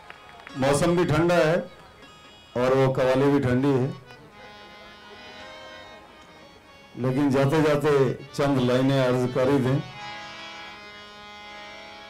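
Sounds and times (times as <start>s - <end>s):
harmonium sustained chord: 0.0s - 12.0s.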